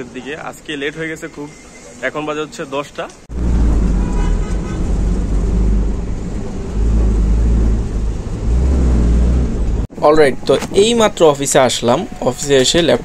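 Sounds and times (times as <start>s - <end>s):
road noise: 0.0s - 13.0s
bus engine rumble: 3.2s - 9.9s.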